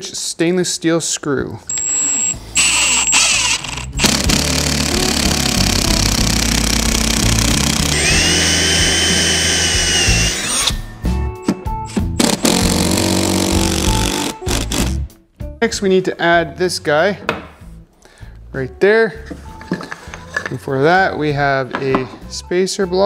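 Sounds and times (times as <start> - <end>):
background music: 1.5 - 23.0
cordless drill boring into plastic: 2.6 - 10.8.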